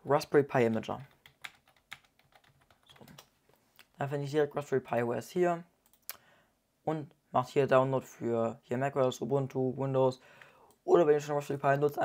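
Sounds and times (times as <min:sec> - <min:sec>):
keyboard typing: 0:00.7 - 0:04.0.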